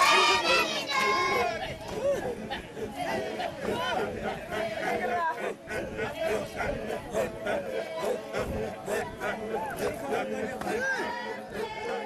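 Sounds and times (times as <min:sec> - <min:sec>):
children chattering: 0:00.0 - 0:12.0
children's voices in chorus: 0:00.0 - 0:12.0.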